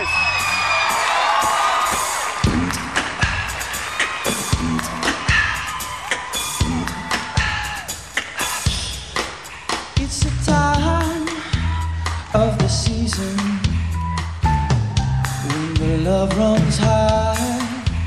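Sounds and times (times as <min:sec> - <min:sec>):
audience cheering and whooping: 0:00.0 - 0:09.9, 0:11.2 - 0:12.7
live band playing: 0:00.0 - 0:18.0
steady beat with bass: 0:00.0 - 0:18.0.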